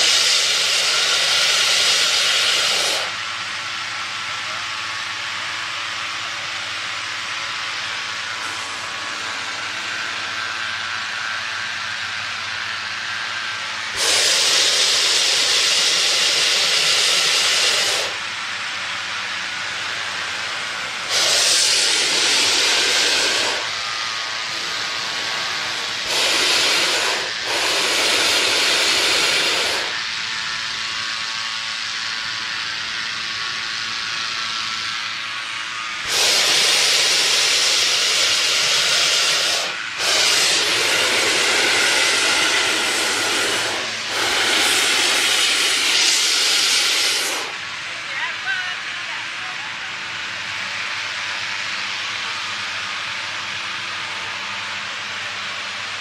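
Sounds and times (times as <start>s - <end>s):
propane burner blasts: 0.0s - 56.0s
steady mechanical noise: 0.0s - 56.0s.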